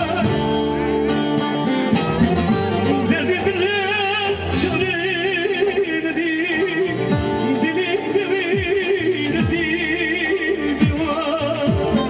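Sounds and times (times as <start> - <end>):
live band accompaniment: 0.0 - 12.0.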